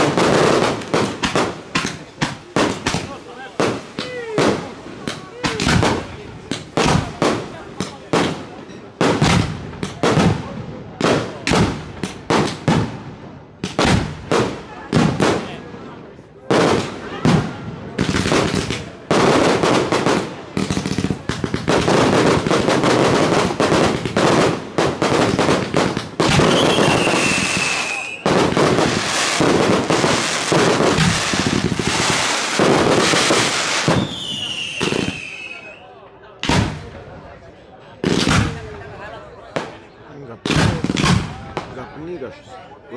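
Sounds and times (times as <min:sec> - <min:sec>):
firework bangs: 0:00.0 - 0:35.8, 0:36.4 - 0:37.2, 0:38.0 - 0:41.8
fireworks crackling barrage: 0:00.0 - 0:42.5.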